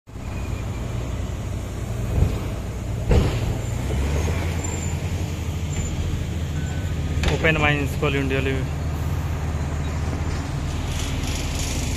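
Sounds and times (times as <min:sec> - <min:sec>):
diesel engine droning: 0:00.1 - 0:11.9.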